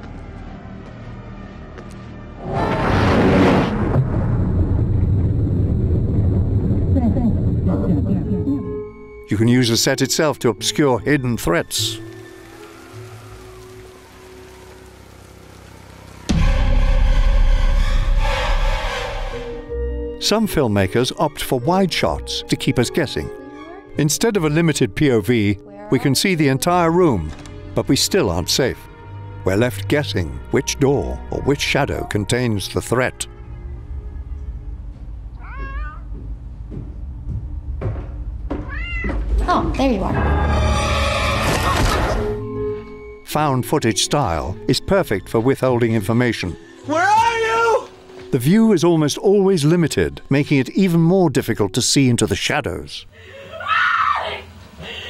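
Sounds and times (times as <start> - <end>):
deep rumble: 0.0 - 9.3, 12.1 - 19.7
sustained orchestral chord: 8.3 - 21.0
rain: 11.2 - 19.0
cat meowing: 35.4 - 36.2, 38.6 - 39.2.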